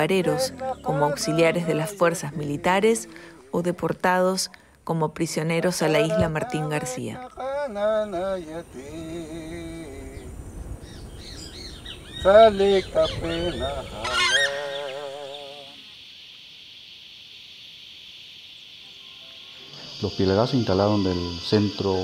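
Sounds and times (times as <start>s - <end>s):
honking bird calls: 0.0s - 3.5s, 10.8s - 15.9s
high insect drone: 0.0s - 4.0s, 5.8s - 22.0s.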